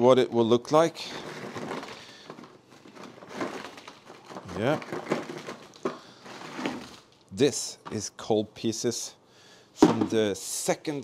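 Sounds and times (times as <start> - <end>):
coal tumbling onto cardboard: 1.2 - 7.1.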